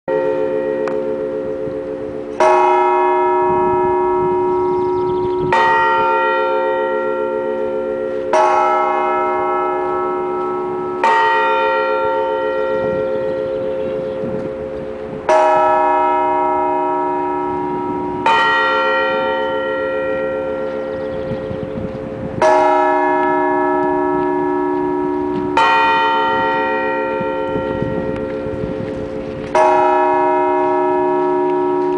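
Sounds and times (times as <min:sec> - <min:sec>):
church bells ringing: 0:00.1 - 0:31.9.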